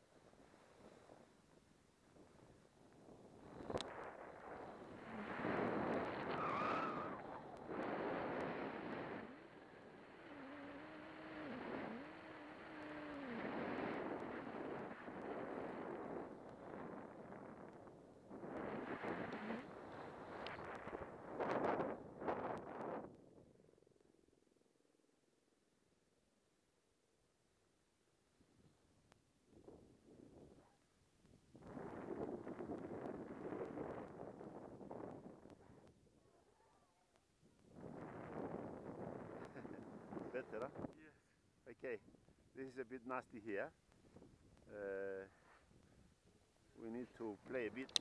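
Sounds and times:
snowboard scraping across snow: 2.2 - 12.7, 18.4 - 23.0.

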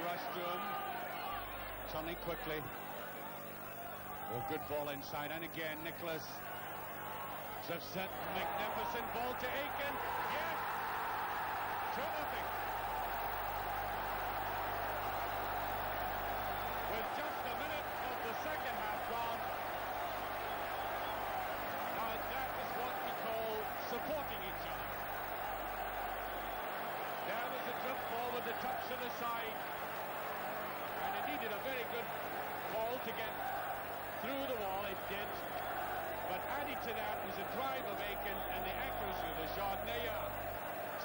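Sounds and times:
stadium crowd cheering: 0.0 - 41.0.

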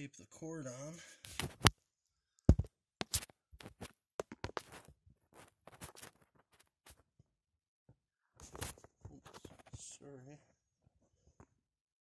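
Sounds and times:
rustling scrape: 4.6 - 7.0.

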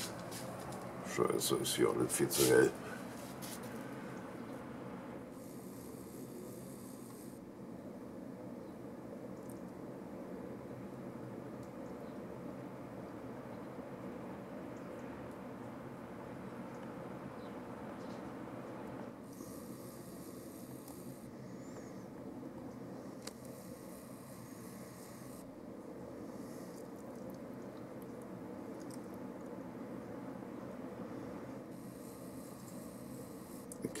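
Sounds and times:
high hiss: 0.0 - 7.4, 19.2 - 22.0, 23.0 - 25.5, 31.2 - 34.0
faint outdoor background noise: 0.0 - 34.0.

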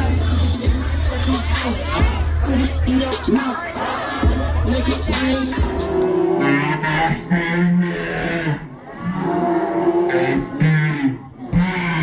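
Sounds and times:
loud music: 0.0 - 6.8
person singing: 0.0 - 6.8.

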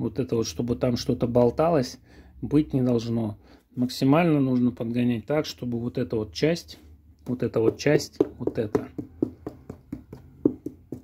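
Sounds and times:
fingers tapping on hard shell: 7.6 - 11.0.

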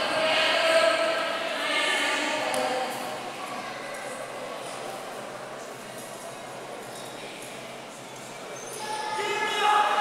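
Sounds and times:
reverberant sports hall din: 0.0 - 10.0.

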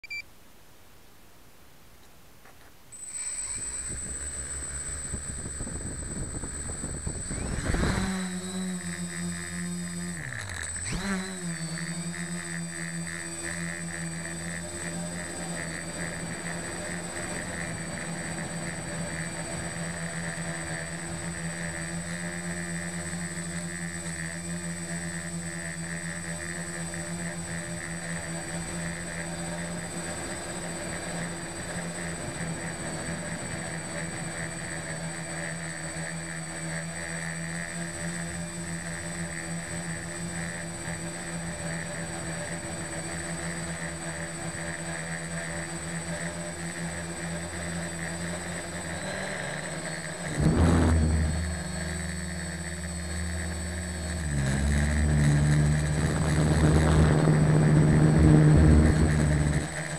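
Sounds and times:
short beep: 0.0 - 0.3
quadcopter motors whining: 2.6 - 59.9
drone propellers buzzing: 3.0 - 59.9.

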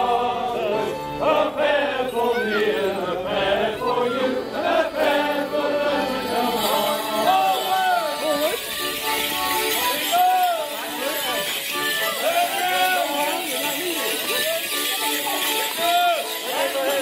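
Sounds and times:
folk dance music: 0.0 - 17.0
jingle of leg bells: 0.0 - 17.0
mix of voices: 0.0 - 17.0.

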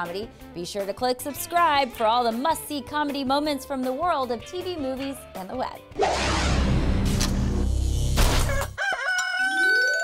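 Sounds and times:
rooster crowing: 8.5 - 10.0.

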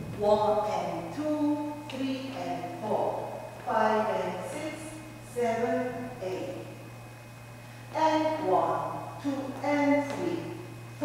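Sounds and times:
woman calling out counts: 0.1 - 6.7, 7.9 - 10.6.

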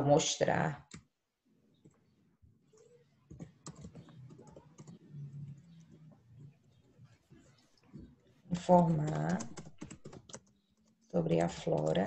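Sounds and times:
keyboard typing: 2.7 - 12.0.

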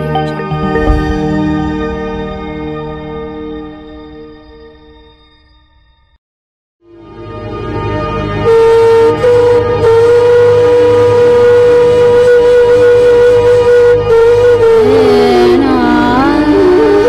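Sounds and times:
low drone: 0.0 - 5.2
long held note: 6.9 - 17.0.

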